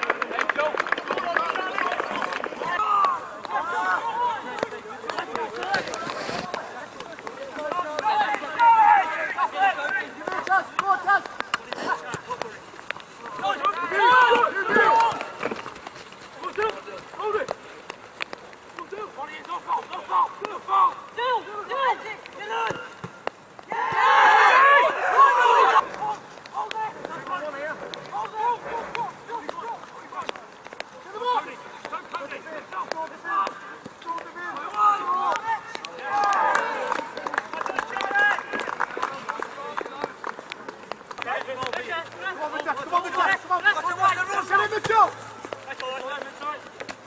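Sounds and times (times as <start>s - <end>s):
voices shouting: 1.2s - 12.6s, 13.2s - 15.5s, 23.6s - 38.8s.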